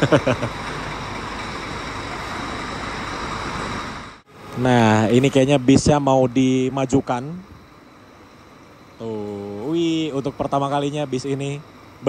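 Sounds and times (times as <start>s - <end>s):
bus diesel engine idling: 0.0s - 12.0s.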